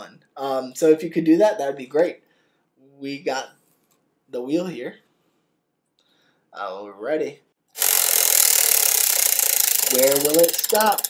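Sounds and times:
prize wheel clicking rattle: 7.8s - 11.0s.

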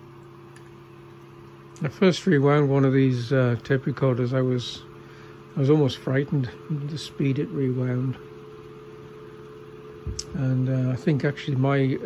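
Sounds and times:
tape recorder rewinding whir: 1.8s - 8.8s.

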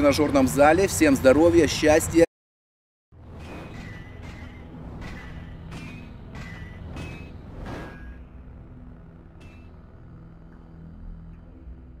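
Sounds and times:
deep rumbling drone: 3.2s - 12.0s.

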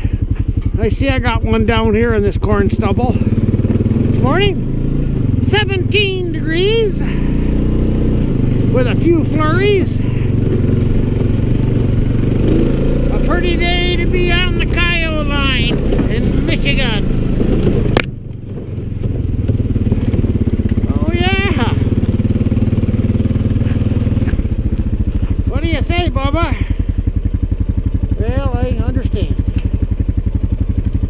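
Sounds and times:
quad engine running: 0.0s - 31.0s.

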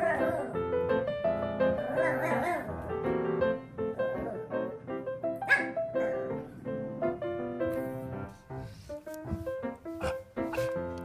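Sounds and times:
puppy yipping: 1.9s - 2.7s, 5.4s - 6.2s, 10.0s - 10.8s.

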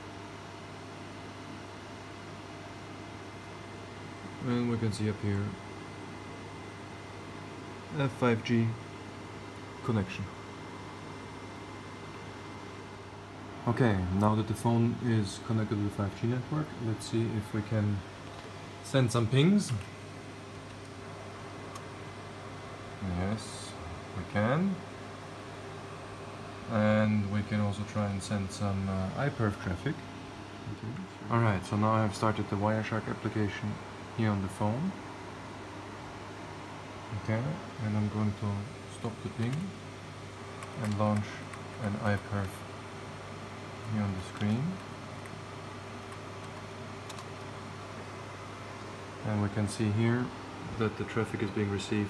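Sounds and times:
equipment fans humming: 0.0s - 52.0s.

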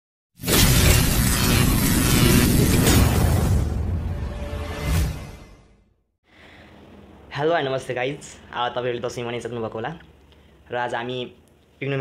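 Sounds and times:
crashing noise burst with rumble: 0.4s - 4.4s.

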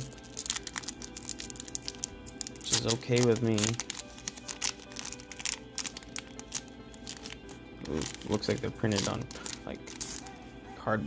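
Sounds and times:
foil pack crinkling: 0.0s - 10.3s
soft background music: 0.0s - 11.0s.

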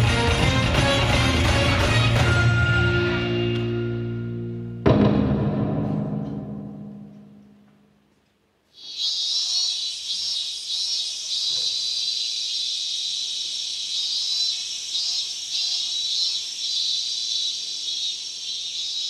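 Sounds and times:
chorus of chirping insects: 8.8s - 19.0s.

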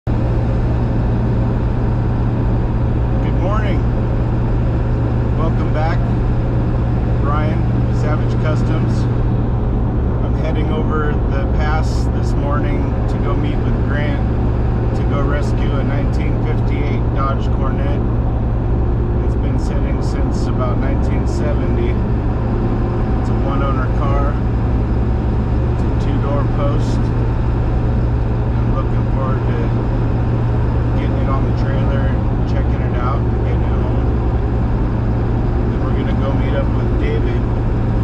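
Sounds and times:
road noise: 0.0s - 38.0s
truck engine drone: 0.0s - 38.0s
man talking: 3.2s - 3.9s, 5.4s - 6.2s, 7.2s - 9.1s, 10.2s - 14.3s, 14.9s - 18.1s, 19.2s - 22.0s, 23.2s - 24.5s, 25.8s - 27.1s, 28.6s - 29.9s, 30.9s - 34.1s, 35.7s - 37.5s.

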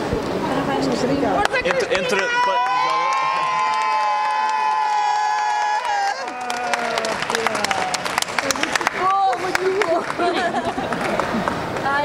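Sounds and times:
crowd cheering: 1.4s - 12.0s
long drawn-out shouts: 1.8s - 8.0s
clapping: 2.6s - 12.0s.

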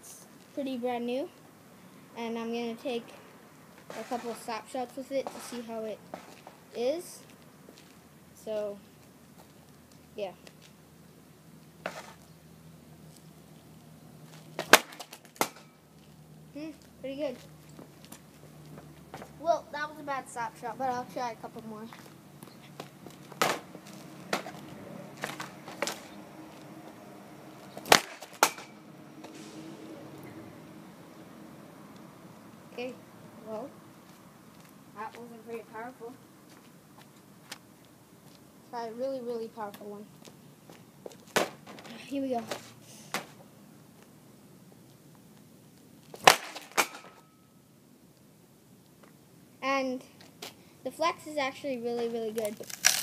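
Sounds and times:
hockey stick knocking on pavement: 11.8s - 12.2s, 14.6s - 15.7s, 22.0s - 26.1s, 27.8s - 28.8s, 41.1s - 43.4s
slapshot crack: 14.6s - 15.8s, 22.8s - 26.2s, 27.8s - 30.3s, 46.1s - 47.3s.

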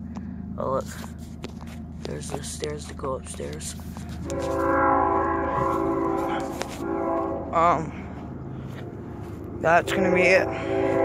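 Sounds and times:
horn sounding a chord: 4.2s - 8.2s, 9.6s - 11.0s.

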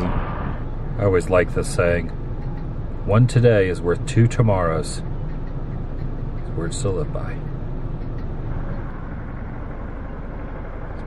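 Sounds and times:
car engine rumble: 0.0s - 11.0s.

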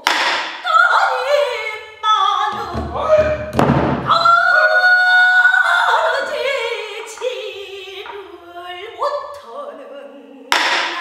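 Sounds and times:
woman singing: 0.0s - 11.0s
drum strokes: 2.5s - 4.2s.

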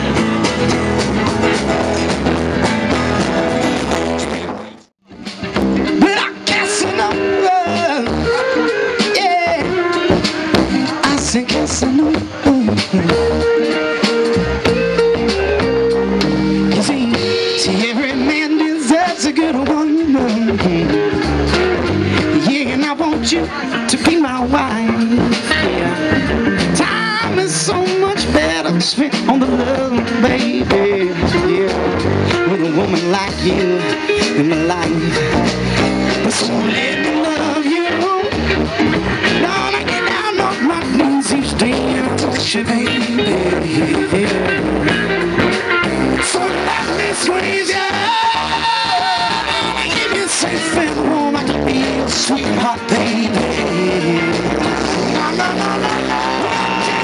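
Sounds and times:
drum hits: 0.0s - 6.6s
live jam band music: 0.0s - 57.0s
sliding lead guitar line: 0.0s - 57.0s.

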